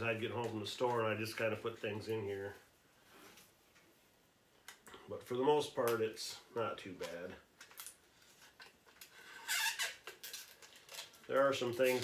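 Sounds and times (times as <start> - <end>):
plastic package squeaks: 7.6 - 12.0.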